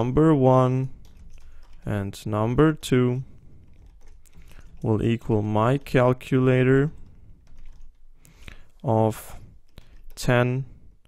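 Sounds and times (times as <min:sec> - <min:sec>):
computer keyboard typing: 0:00.6 - 0:08.9, 0:09.6 - 0:10.4.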